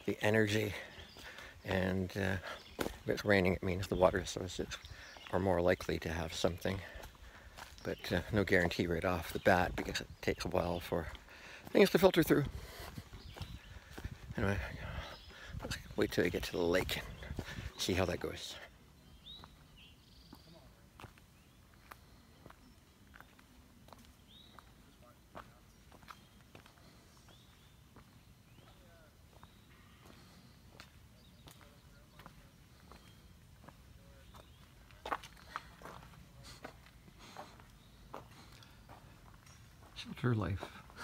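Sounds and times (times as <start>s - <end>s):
footsteps on stone and dirt: 0.1s - 41.0s.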